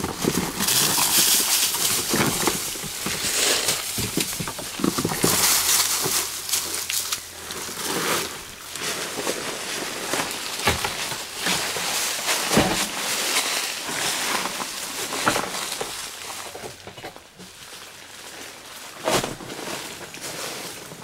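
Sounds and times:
dry leaves rustling and crunching: 0:00.0 - 0:21.0.

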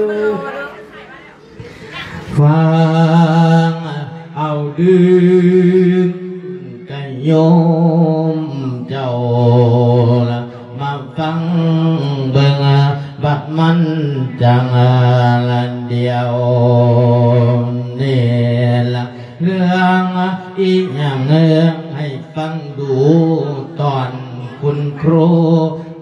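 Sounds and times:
man chanting into a microphone: 0:02.2 - 0:26.0.

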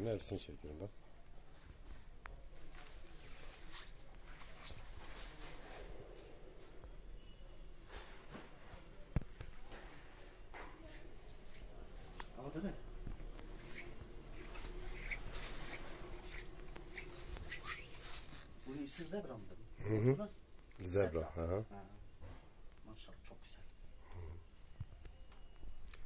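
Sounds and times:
soft rustles: 0:01.5 - 0:06.0, 0:07.8 - 0:19.5
low steady hum: 0:09.2 - 0:26.0.

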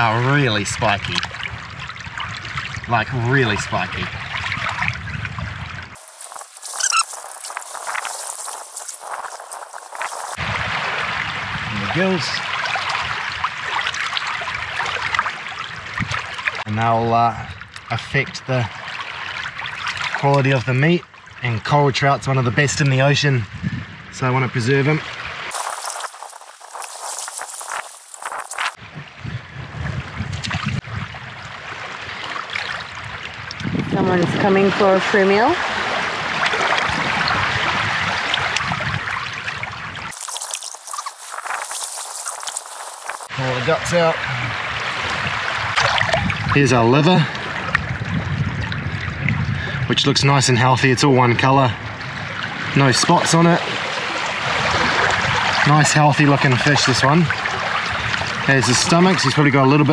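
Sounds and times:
water trickling and splashing: 0:00.0 - 0:16.7, 0:17.5 - 0:21.4, 0:24.9 - 0:49.7, 0:51.9 - 0:59.9
brief high squeak: 0:06.6 - 0:07.6.

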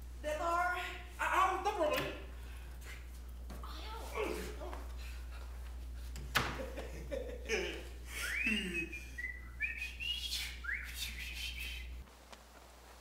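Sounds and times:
steady low hum: 0:00.0 - 0:13.0
gliding whistled tones: 0:08.2 - 0:11.9.

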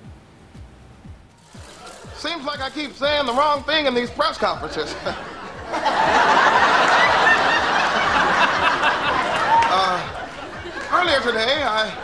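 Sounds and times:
audience laughing loudly: 0:01.6 - 0:12.0.

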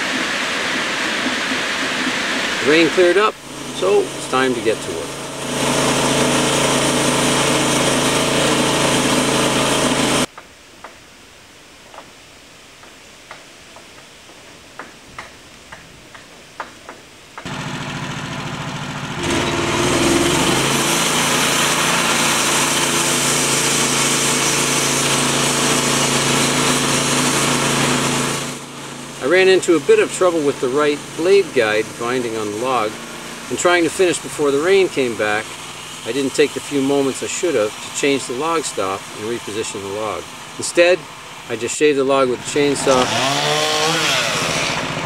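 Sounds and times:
sawmill engine running: 0:00.0 - 0:10.3, 0:17.4 - 0:45.0
band blade cutting log: 0:19.2 - 0:40.9, 0:42.5 - 0:45.0.

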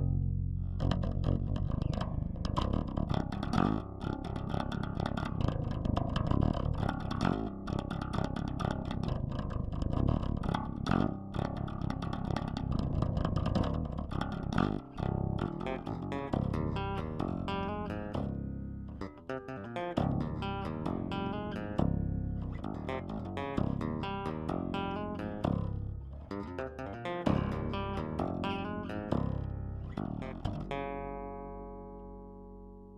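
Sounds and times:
electric bass lead line: 0:00.0 - 0:32.9.

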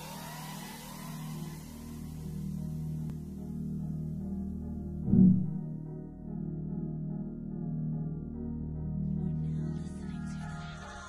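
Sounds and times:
low drone: 0:00.0 - 0:09.7.

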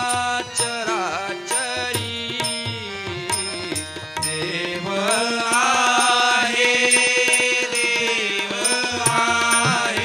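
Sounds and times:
harmonium: 0:00.0 - 0:10.0
tabla beat: 0:00.0 - 0:10.0
voices singing devotional melody: 0:00.0 - 0:10.0.

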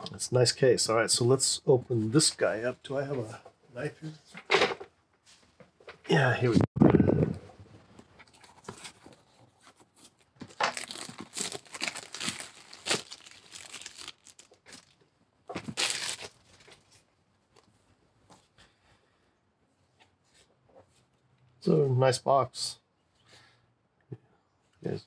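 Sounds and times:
plastic wrap crackling: 0:10.1 - 0:16.9.

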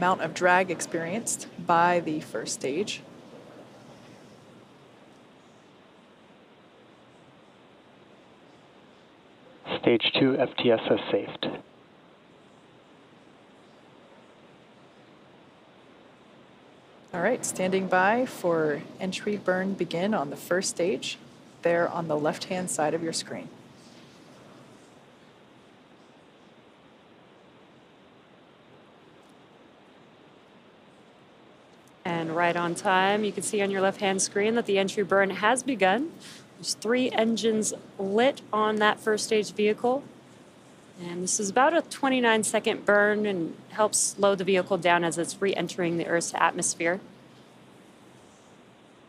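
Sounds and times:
faint steady hiss: 0:00.0 - 0:49.0.

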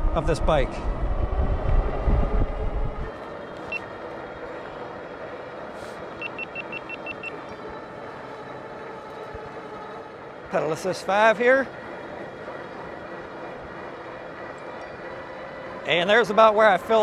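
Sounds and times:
wind buffeting microphone: 0:00.0 - 0:03.6.

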